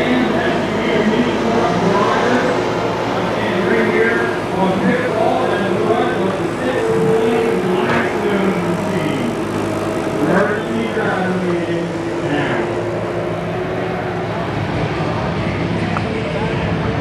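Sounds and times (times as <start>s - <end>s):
loader engine running: 0.0s - 17.0s
people talking: 0.0s - 17.0s.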